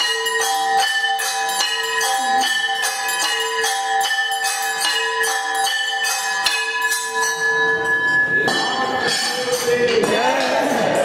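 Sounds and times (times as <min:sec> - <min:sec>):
temple bells ringing: 0:00.0 - 0:11.0
murmur of voices: 0:07.7 - 0:11.0.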